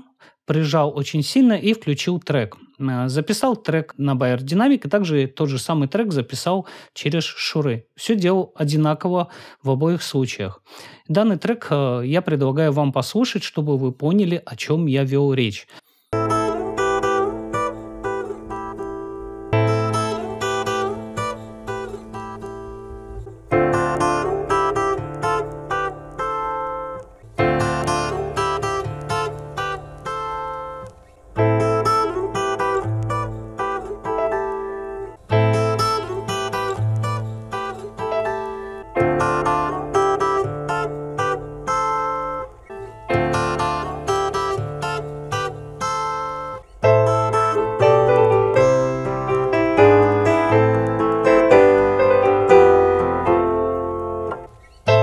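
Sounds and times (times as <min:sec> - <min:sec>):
plucked guitar music: 0:16.1 - 0:55.0.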